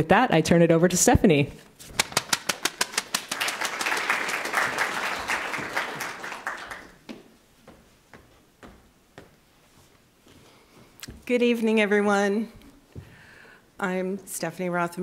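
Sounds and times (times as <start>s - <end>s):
audience applauding: 2.2s - 7.1s.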